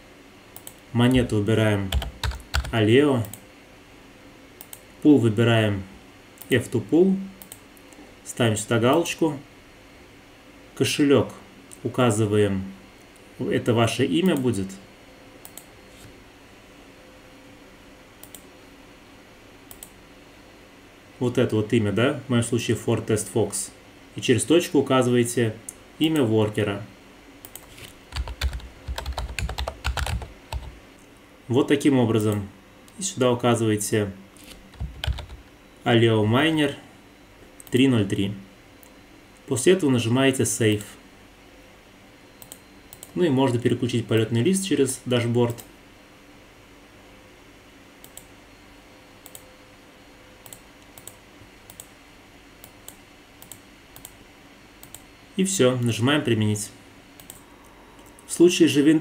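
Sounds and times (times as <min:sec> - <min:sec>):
faint steady hum: 0:00.0 - 0:59.0
computer mouse clicks: 0:00.6 - 0:00.8, 0:04.6 - 0:04.9, 0:07.4 - 0:08.0, 0:15.4 - 0:16.1, 0:18.2 - 0:18.5, 0:19.7 - 0:20.0, 0:27.4 - 0:30.8, 0:42.4 - 0:43.2, 0:48.0 - 0:48.3, 0:49.2 - 0:49.5, 0:50.4 - 0:52.0, 0:52.6 - 0:54.2, 0:54.8 - 0:55.1, 0:57.2 - 0:58.3
computer keyboard typing: 0:01.9 - 0:03.4, 0:27.5 - 0:30.8, 0:34.4 - 0:35.4.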